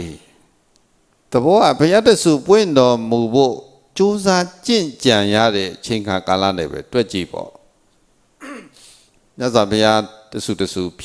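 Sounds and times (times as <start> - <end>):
throat clearing: 8.4 - 8.8.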